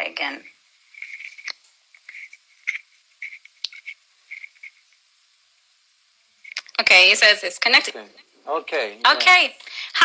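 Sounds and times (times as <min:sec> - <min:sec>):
earphone microphone handling crackles: 0:00.4 - 0:05.0.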